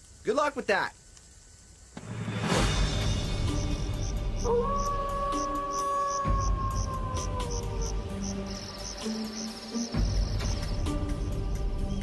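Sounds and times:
crickets chirping: 0.0s - 12.0s
insect trill: 0.0s - 12.0s
low background music: 2.0s - 12.0s
wolf howling: 4.4s - 8.2s.

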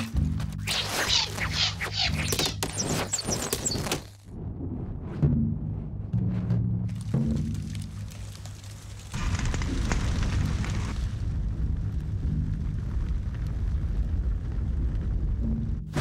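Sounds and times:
large fire roaring: 6.9s - 16.0s.

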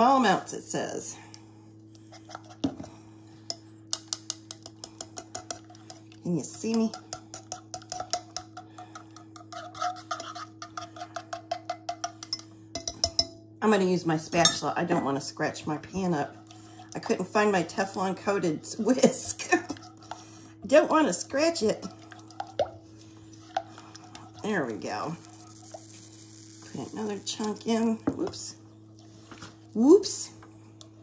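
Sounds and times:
thick sauce stirred with spatula: 4.0s - 12.4s, 19.4s - 27.6s.

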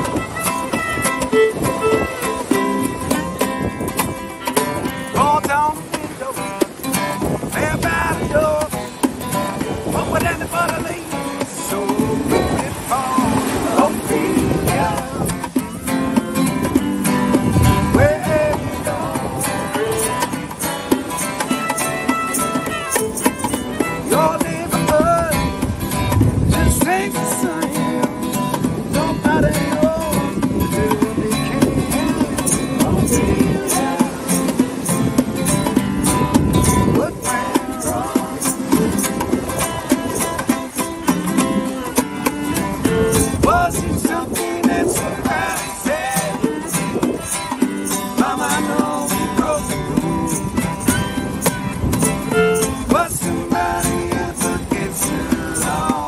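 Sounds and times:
fiddle: 0.0s - 5.9s, 19.3s - 24.8s, 50.5s - 53.0s
strummed acoustic guitar: 0.0s - 56.0s
voices singing together: 7.5s - 56.0s.

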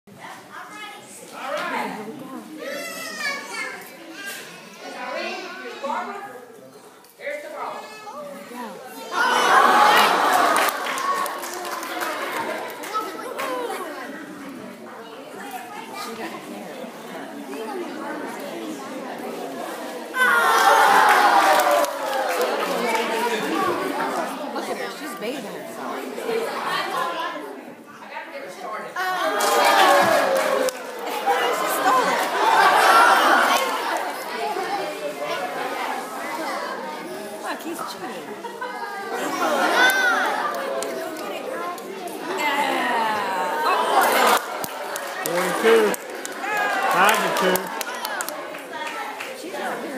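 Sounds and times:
crowd chatter: 0.1s - 49.9s.

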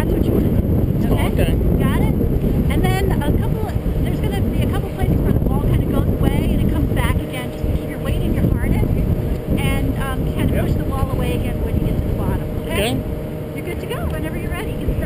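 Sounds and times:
people talking indistinctly: 0.0s - 15.0s
wind buffeting microphone: 0.0s - 15.0s.

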